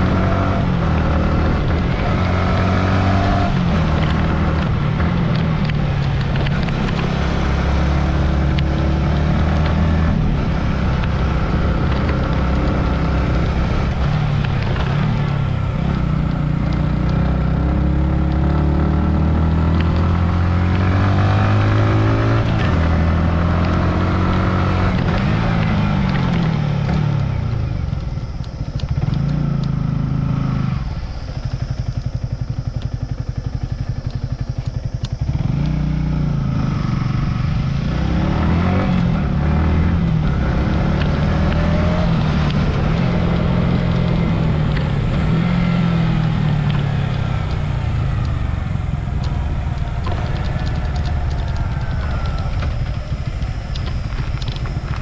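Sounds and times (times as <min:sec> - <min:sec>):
motorcycle engine revving: 0:00.0 - 0:55.0.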